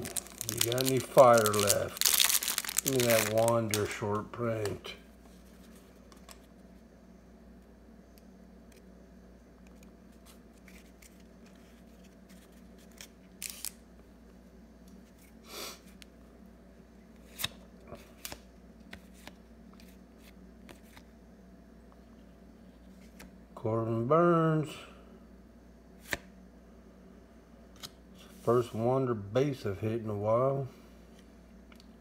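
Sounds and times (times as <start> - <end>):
cards shuffling: 0.0 - 4.9, 9.7 - 13.8, 17.2 - 21.1
faint room hum: 0.0 - 32.0.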